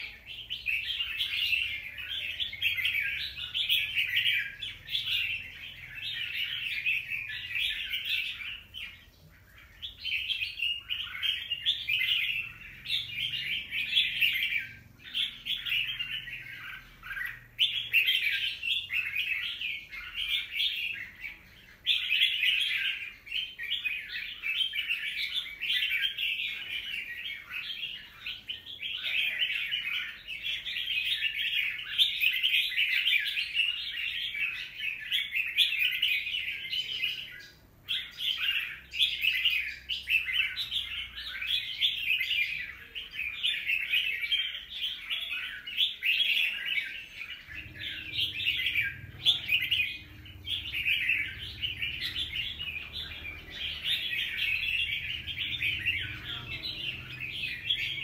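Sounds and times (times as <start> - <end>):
bird chattering song: 0.0 - 58.0.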